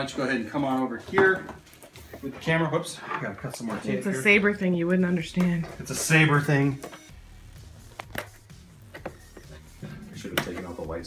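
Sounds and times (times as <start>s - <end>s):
faint background music: 0.0s - 11.0s.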